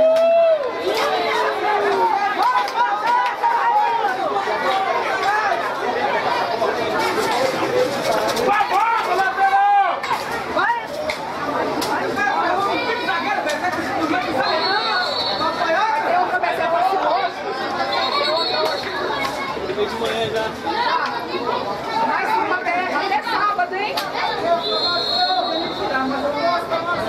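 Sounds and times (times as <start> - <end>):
babble of voices: 0.0 - 27.0
short high whistle tones: 24.6 - 25.9.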